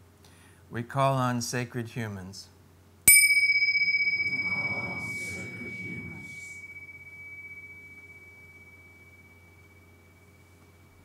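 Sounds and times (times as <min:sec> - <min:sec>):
tingsha cymbals ringing: 0:03.1 - 0:11.0.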